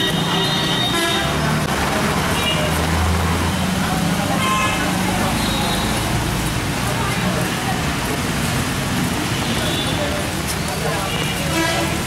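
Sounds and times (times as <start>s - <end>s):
horns tooting: 0.0s - 1.6s, 11.0s - 12.0s
vehicle engines running: 0.0s - 12.0s.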